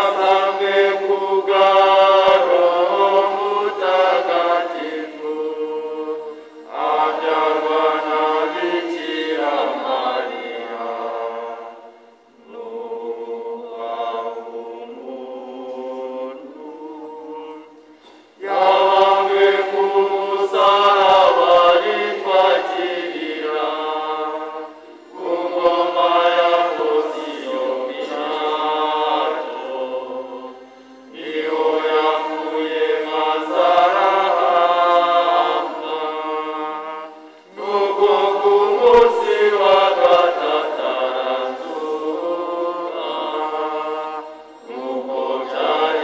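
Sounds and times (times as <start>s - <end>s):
church choir singing a hymn: 0.0s - 46.0s.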